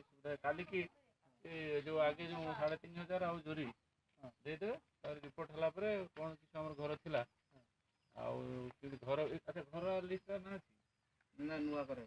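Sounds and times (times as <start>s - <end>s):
man speaking: 0.2s - 7.3s, 8.2s - 10.7s, 11.4s - 12.0s.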